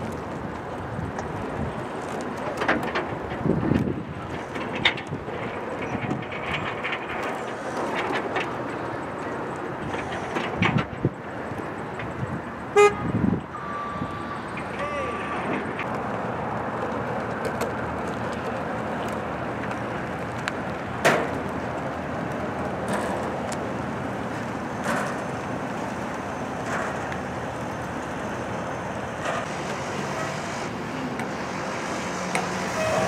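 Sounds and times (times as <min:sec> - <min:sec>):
short loud horn toot: 0:12.8 - 0:14.2, 0:32.7 - 0:33.0.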